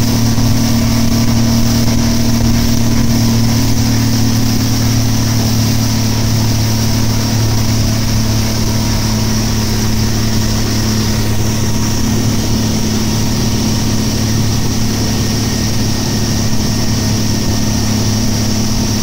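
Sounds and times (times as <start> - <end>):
outboard motor running: 0.0 - 19.0
rush of boat wake: 0.0 - 19.0.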